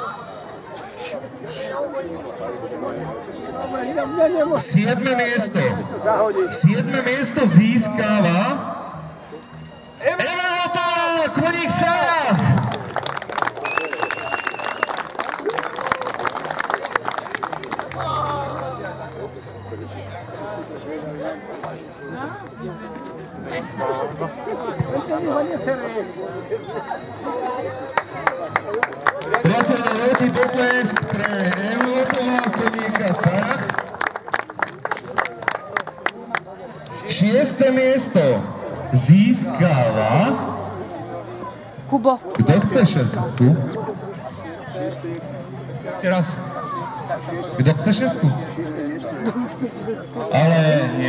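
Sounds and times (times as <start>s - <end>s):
amplified announcer's voice: 4.5s - 9.1s, 10.0s - 12.7s, 29.4s - 33.8s
crowd applauding: 12.3s - 19.3s, 27.8s - 37.0s
audience clapping: 12.4s - 18.8s, 28.0s - 36.6s.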